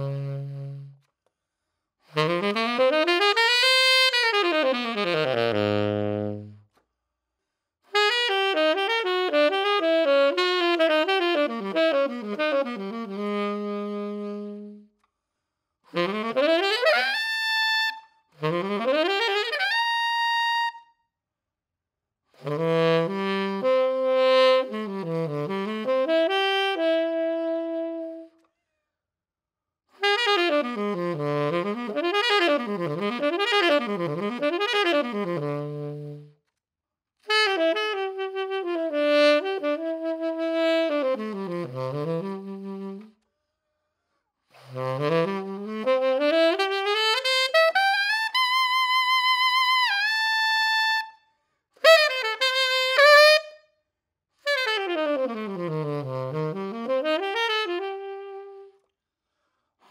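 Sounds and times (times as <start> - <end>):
saxophone long note: 0.0 - 1.0, 54.6 - 58.8
tenor saxophone solo: 0.0 - 1.1, 2.1 - 6.7, 7.9 - 14.9, 15.9 - 20.9, 22.4 - 28.4, 30.0 - 36.4, 37.2 - 43.2, 44.5 - 51.2, 51.8 - 53.7, 54.4 - 58.8.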